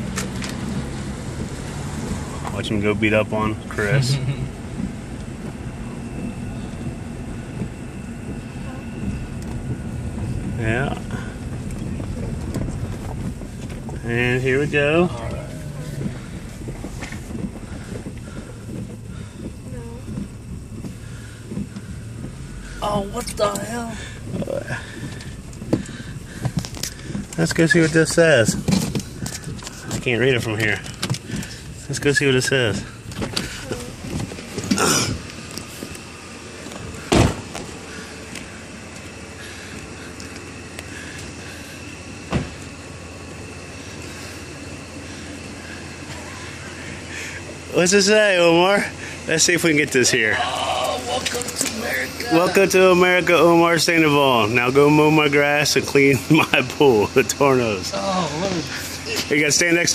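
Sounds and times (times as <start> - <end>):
car engine and road hum: 0.0 - 59.9
steady background noise: 0.0 - 59.9
car doors slamming: 32.9 - 39.2, 40.6 - 43.7.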